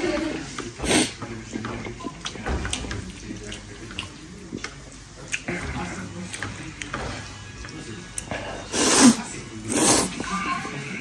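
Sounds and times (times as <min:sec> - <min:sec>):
man slurping noodles: 0:08.7 - 0:10.2.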